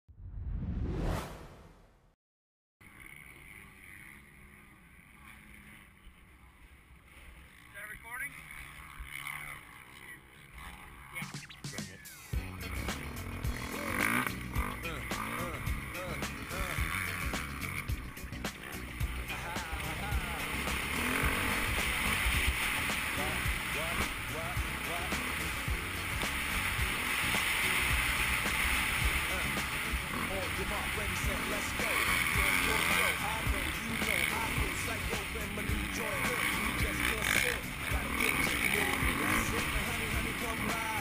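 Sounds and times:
motorcycle engine revving: 0:02.8 - 0:41.0.

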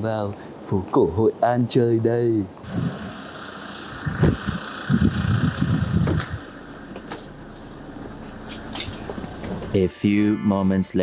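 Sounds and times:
minibus engine idling: 0:02.6 - 0:09.8
low thumps and knocks: 0:05.2 - 0:07.3.

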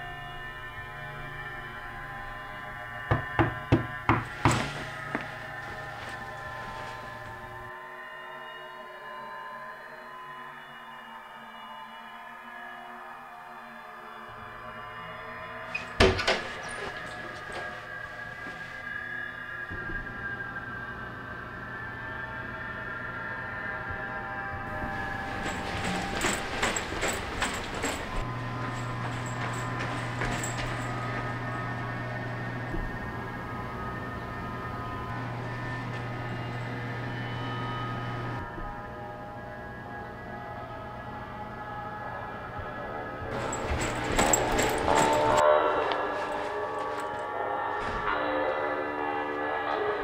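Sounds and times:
horror film drone: 0:00.0 - 0:50.0
knocks on wooden door: 0:03.1 - 0:04.8.

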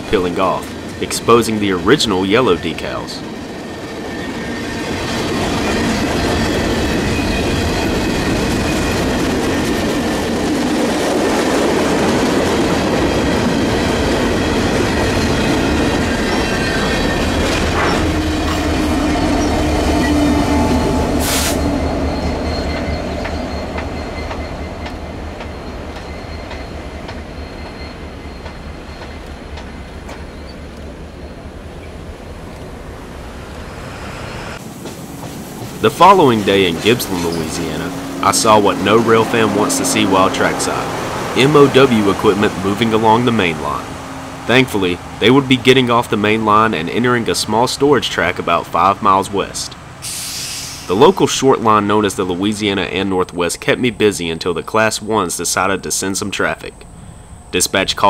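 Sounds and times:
freight cars rumbling and clattering: 0:00.0 - 0:50.1
diesel locomotive engine hum: 0:00.0 - 0:58.0
wheels squealing: 0:00.2 - 0:51.1.

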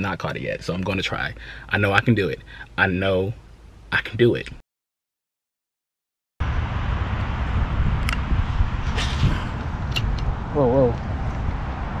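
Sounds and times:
low outdoor rumble: 0:00.0 - 0:04.6, 0:06.4 - 0:12.0.

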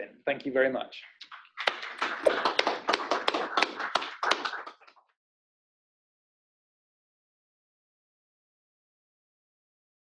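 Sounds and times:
small audience applauding: 0:01.2 - 0:05.1.

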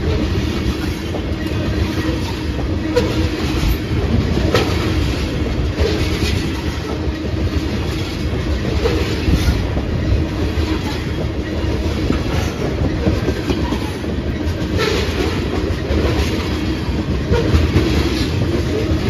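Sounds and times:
train wheels rumbling on rails: 0:00.0 - 0:19.0
wheels clicking over rail joints: 0:00.0 - 0:19.0.

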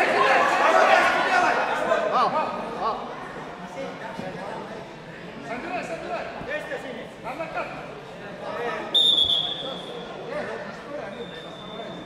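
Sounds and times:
spectators chattering: 0:00.0 - 0:12.0
referee's whistle blast: 0:08.9 - 0:10.0.

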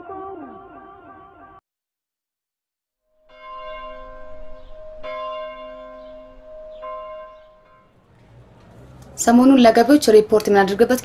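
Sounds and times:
bell ringing: 0:03.3 - 0:08.0.

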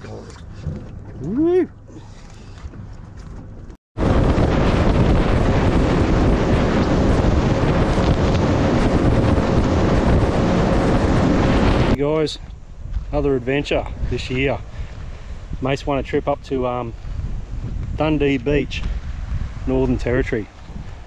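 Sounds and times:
water rushing along boat hull: 0:00.0 - 0:12.0
wind buffeting microphone: 0:00.0 - 0:21.0.

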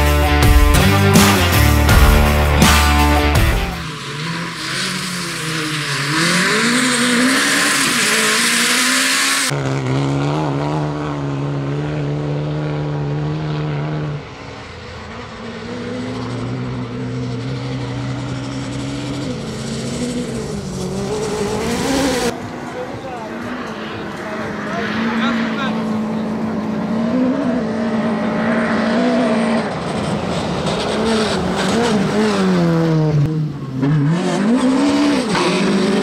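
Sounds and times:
rock music: 0:00.0 - 0:04.8
rally car engine revving: 0:00.0 - 0:36.0.

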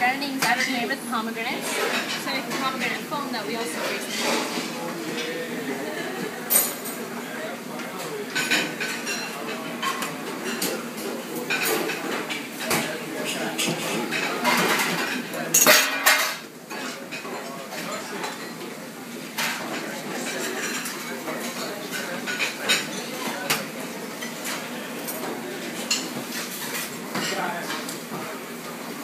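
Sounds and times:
metal bowls and utensils clinking: 0:00.2 - 0:05.4, 0:06.4 - 0:07.1, 0:07.8 - 0:18.7, 0:19.3 - 0:28.9.

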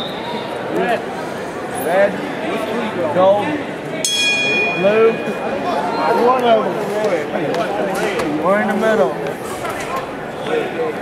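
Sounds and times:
crowd voices: 0:00.0 - 0:11.0
boxing ring bell ringing: 0:04.0 - 0:05.6.

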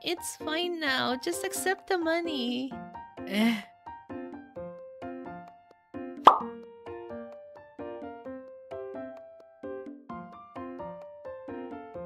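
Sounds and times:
cartoon plop sound effect: 0:06.2 - 0:06.6.

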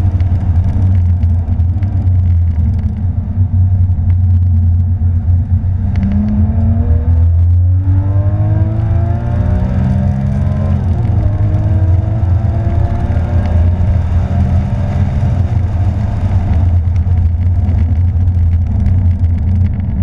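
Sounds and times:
car engine accelerating hard: 0:00.0 - 0:20.0
heavy low rumble: 0:00.0 - 0:20.0.

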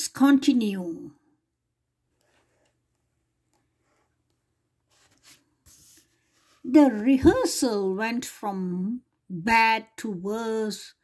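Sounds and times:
book page turning: 0:04.9 - 0:06.7
paper rustles: 0:04.9 - 0:06.7.

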